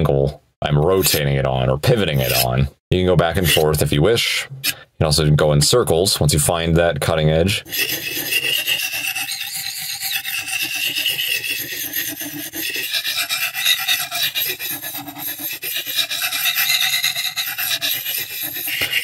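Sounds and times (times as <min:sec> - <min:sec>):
knife scraping on ceramic: 0:01.0 - 0:02.6, 0:03.3 - 0:03.9, 0:07.6 - 0:19.0.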